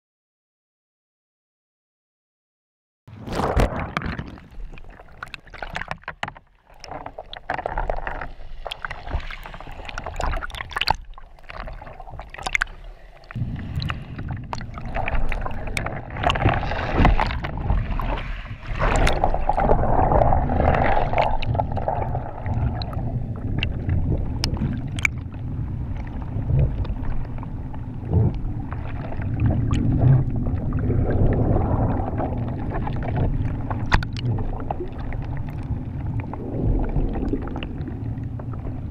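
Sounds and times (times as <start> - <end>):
muffled underwater rumble: 3.1 - 38.9
water sloshing and splashing: 3.1 - 38.9
sharp underwater clicks: 9.9 - 17.5, 24.4 - 25.3, 33.8 - 34.3.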